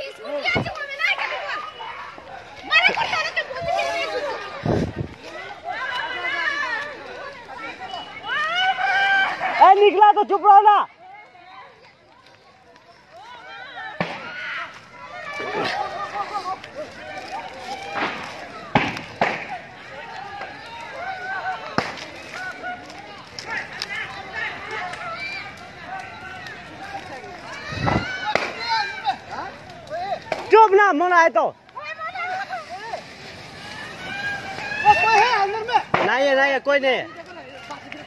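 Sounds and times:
distant people talking: 0:00.0 - 0:38.0.

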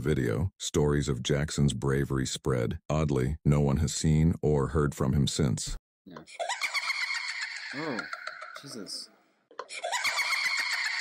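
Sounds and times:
high-pitched creepy laugh: 0:06.3 - 0:08.7, 0:09.5 - 0:11.0.

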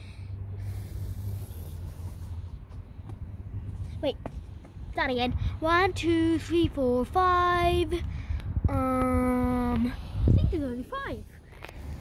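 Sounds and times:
soft breathy hiss: 0:00.0 - 0:02.5
low outdoor rumble: 0:00.0 - 0:12.0.

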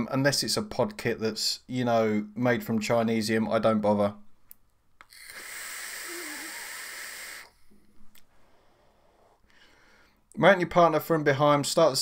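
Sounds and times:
air hissing through a vape: 0:05.0 - 0:07.6.

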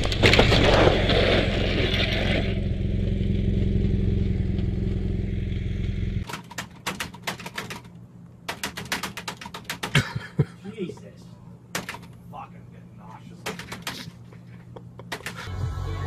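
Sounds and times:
motorcycle engine running: 0:00.0 - 0:06.2
computer keyboard typing: 0:06.3 - 0:07.9, 0:08.5 - 0:10.0, 0:13.4 - 0:14.1, 0:15.1 - 0:15.4.

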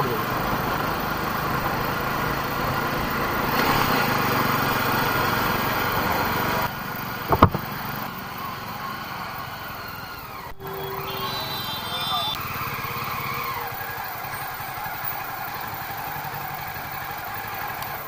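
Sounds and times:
motorcycle engine running: 0:00.0 - 0:18.0
motorcycle engine blip: 0:07.3 - 0:07.8.

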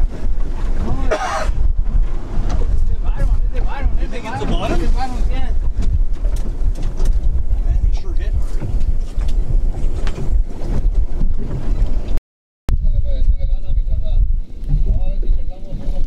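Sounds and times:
wind rumble on microphone: 0:00.0 - 0:16.0.

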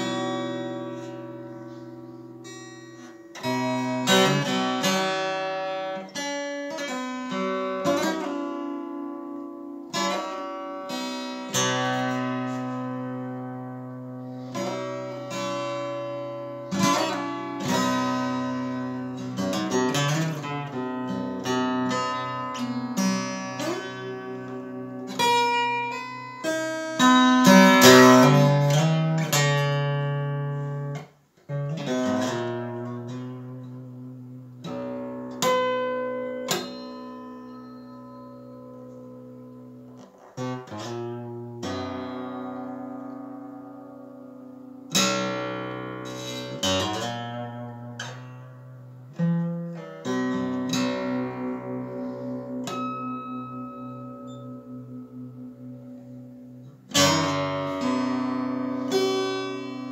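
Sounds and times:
solo guitar playing: 0:00.0 - 0:59.9.

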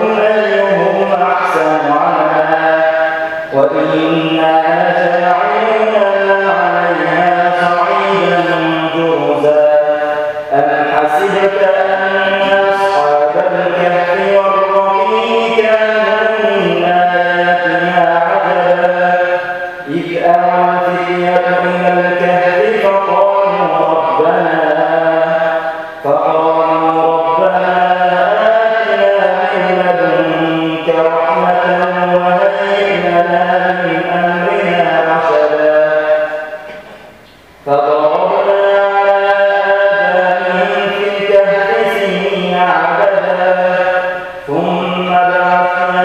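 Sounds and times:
man chanting melodic recitation: 0:00.0 - 0:46.0.

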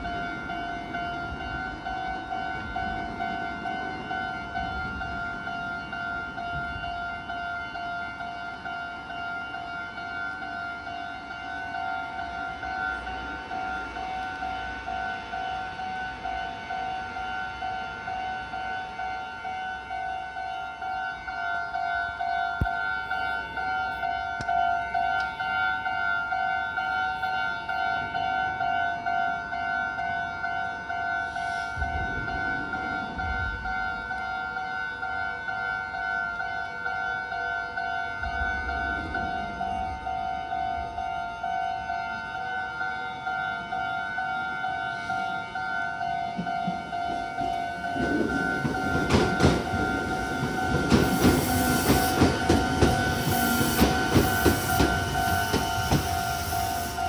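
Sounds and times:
level-crossing warning bell: 0:00.0 - 0:57.0.

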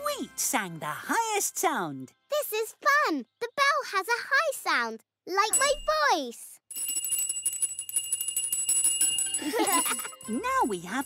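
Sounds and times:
hand bell ringing rapidly: 0:06.7 - 0:11.0.

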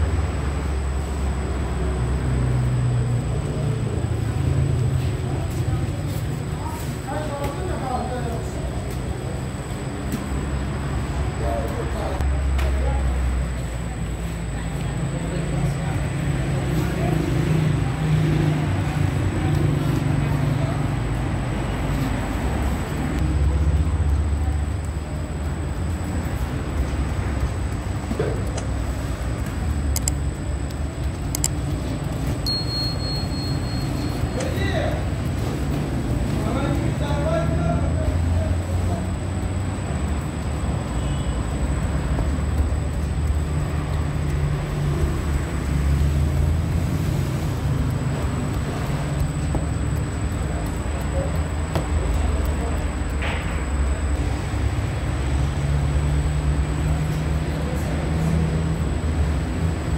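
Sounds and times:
brief high tone: 0:32.4 - 0:34.6.

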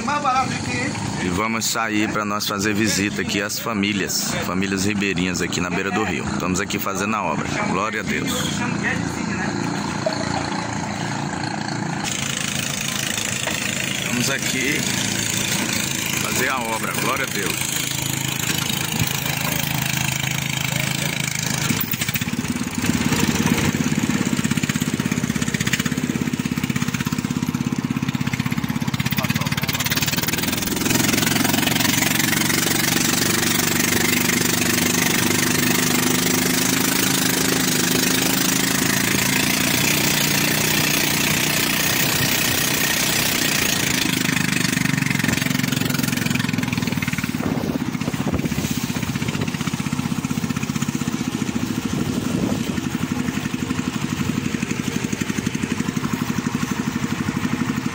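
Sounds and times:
boat engine droning: 0:00.0 - 0:57.9.

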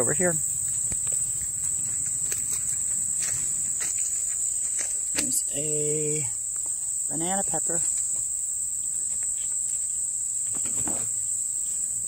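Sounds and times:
insect chorus trilling: 0:00.0 - 0:12.0.

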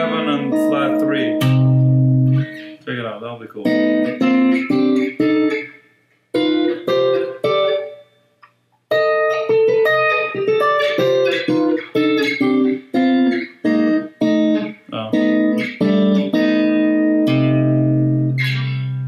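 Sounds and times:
clean electric guitar chords: 0:00.0 - 0:02.9, 0:03.6 - 0:05.8, 0:06.4 - 0:08.0, 0:08.9 - 0:19.0.

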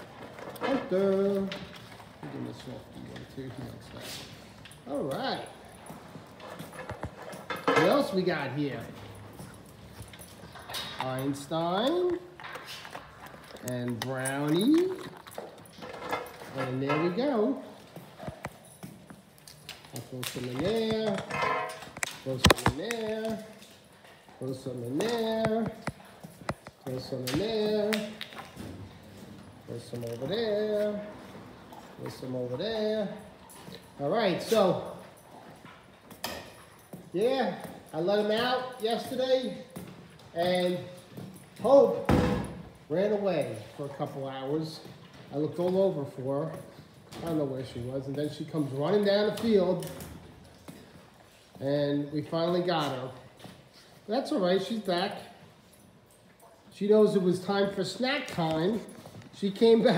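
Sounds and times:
dog paws tapping on concrete: 0:00.0 - 0:59.9
low background noise: 0:00.0 - 0:59.9.

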